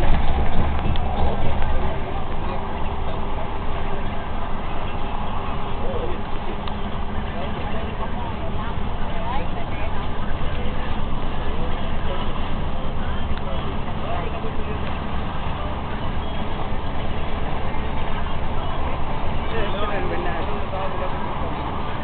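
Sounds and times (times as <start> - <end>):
car road noise from inside: 0.0 - 22.0
faint voices: 0.0 - 22.0.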